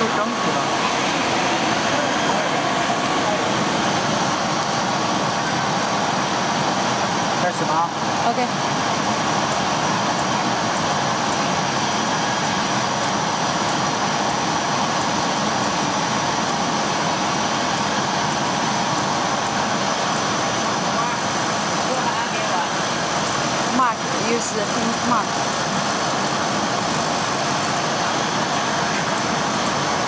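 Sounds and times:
laser cutting machine running: 0:00.0 - 0:30.0.

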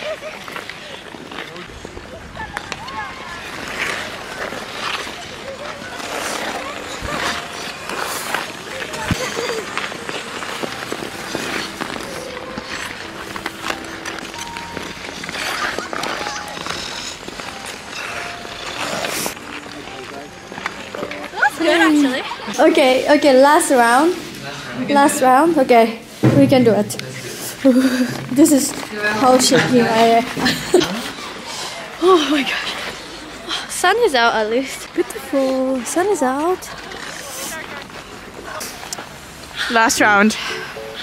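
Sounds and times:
skate blades scraping on ice: 0:00.0 - 0:24.3, 0:34.0 - 0:40.9
faint voices: 0:00.0 - 0:41.0.

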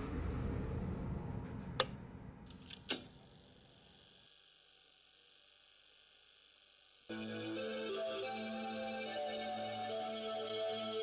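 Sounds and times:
low rumble: 0:00.0 - 0:02.6.

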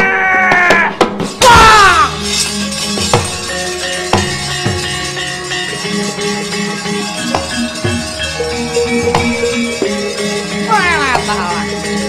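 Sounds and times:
metallophones ringing held notes: 0:02.1 - 0:12.0.

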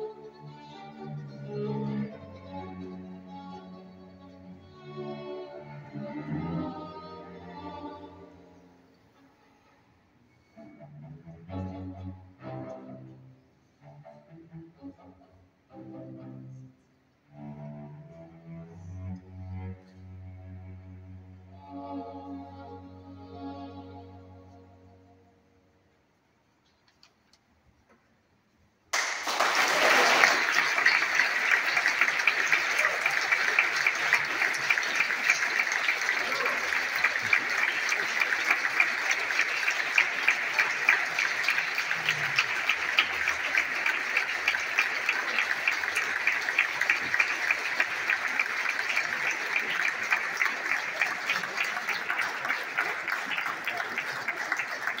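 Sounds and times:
audience applauding: 0:28.9 - 0:55.0.

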